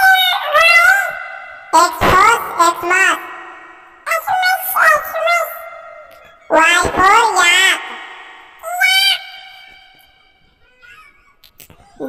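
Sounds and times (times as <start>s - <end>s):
high-pitched voice holding a note: 6.5s - 10.1s.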